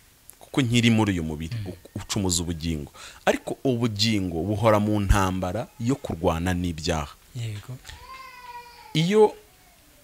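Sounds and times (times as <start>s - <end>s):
man speaking: 0.4s - 8.0s, 9.0s - 9.4s.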